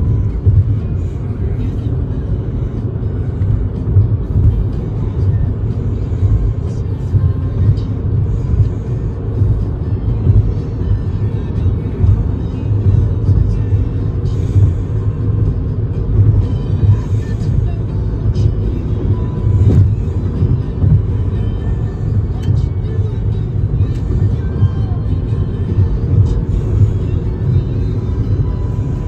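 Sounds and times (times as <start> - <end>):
faint music: 0.0 - 29.0
road and engine rumble: 0.0 - 29.0.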